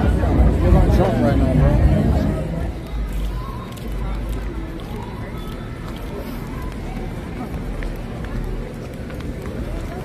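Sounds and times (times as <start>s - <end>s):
steady low rumble: 0.0s - 3.3s
indistinct voices: 0.0s - 10.0s
street noise: 0.0s - 10.0s.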